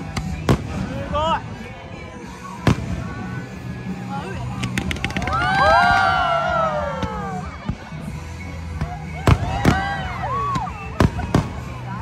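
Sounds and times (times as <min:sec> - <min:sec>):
firework bangs: 0:10.9 - 0:11.8.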